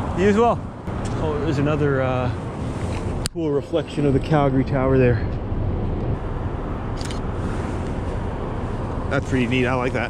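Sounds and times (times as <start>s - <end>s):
city traffic rumble: 0.0s - 10.0s.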